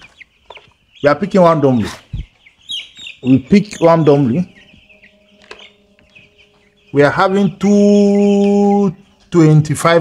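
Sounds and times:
chicks peeping: 0.0 - 10.0.

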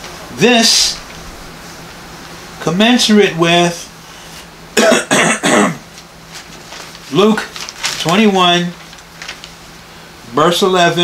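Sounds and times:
man coughing: 4.8 - 5.9.

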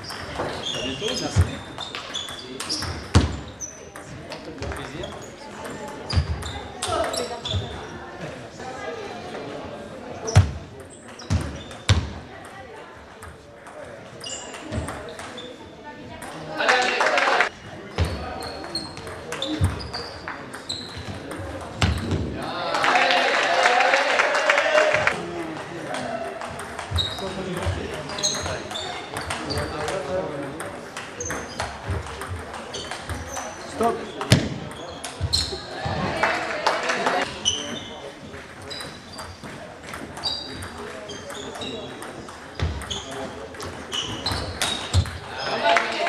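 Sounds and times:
shoes squeaking on floor: 0.0 - 8.1, 10.2 - 12.2, 14.1 - 15.9, 17.8 - 22.3, 26.8 - 30.0, 31.2 - 36.1, 37.2 - 45.7
brief high squeak: 14.2 - 15.5.

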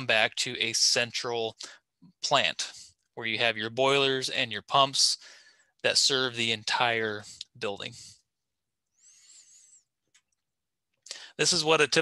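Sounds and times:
man breathing through nose: 5.2 - 5.7, 9.0 - 9.9.

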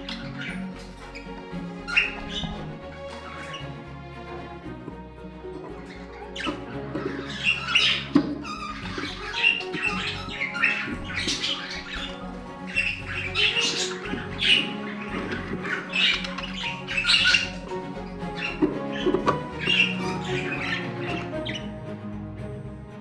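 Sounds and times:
budgerigars calling: 0.0 - 3.8, 5.5 - 21.9
background music: 0.0 - 23.0.

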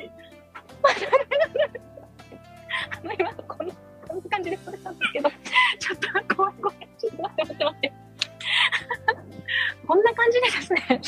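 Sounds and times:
woman laughing nervously: 0.8 - 2.0, 2.7 - 3.5, 4.6 - 5.8, 6.8 - 9.8.

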